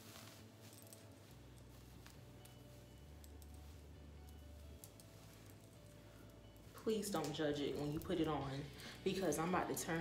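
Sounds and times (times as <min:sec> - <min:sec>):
faint hair rustling: 0:00.0 - 0:10.0.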